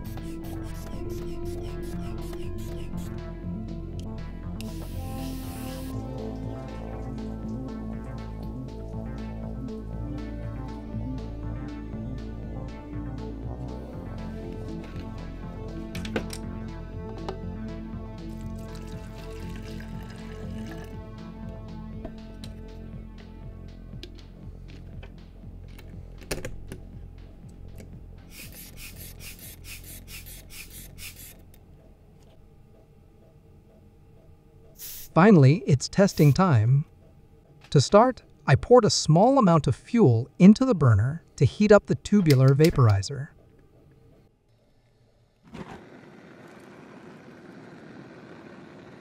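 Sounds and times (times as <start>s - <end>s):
hand pump air puffs: 0.0s - 3.2s, 28.3s - 31.4s
faint background music: 0.0s - 44.4s
fuel burner hissing rush: 4.6s - 6.0s.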